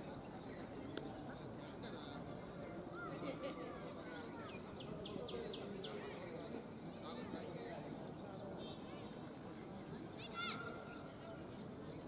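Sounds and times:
faint outdoor background noise: 0.0 - 12.0.

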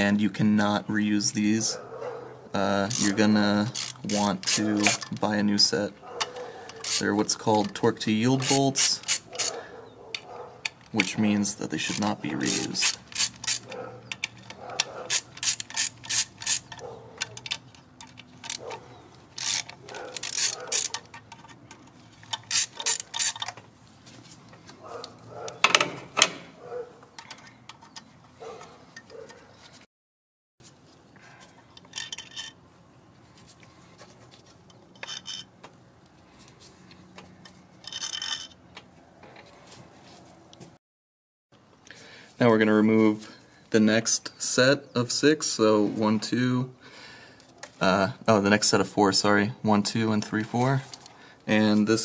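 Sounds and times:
hand ratchet clicking: 2.9 - 5.2, 6.2 - 7.0, 8.4 - 9.6, 11.8 - 21.4, 22.2 - 23.6.

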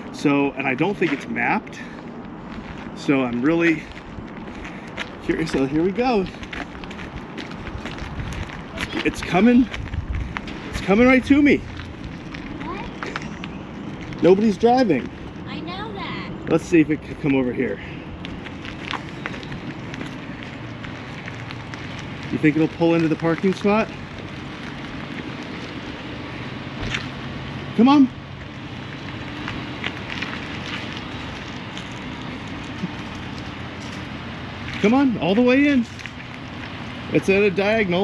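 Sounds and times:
steady low hum: 0.0 - 38.0
wind rumbling on microphone: 1.8 - 15.6, 18.0 - 27.7
wind noise on microphone: 6.4 - 13.3.

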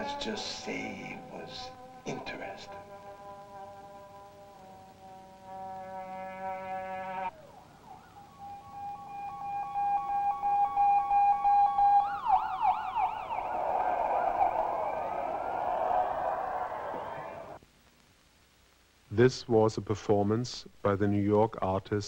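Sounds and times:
horn-like chord: 0.0 - 7.3
siren wailing and yelping: 7.3 - 17.6.

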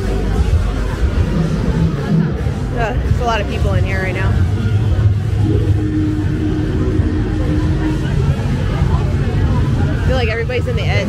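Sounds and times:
deep steady rumble: 0.0 - 11.0
steady low hum: 0.0 - 11.0.

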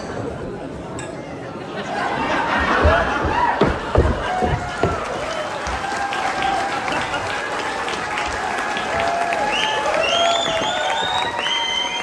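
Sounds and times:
voices in the crowd: 0.0 - 12.0
audience applauding: 2.8 - 12.0.

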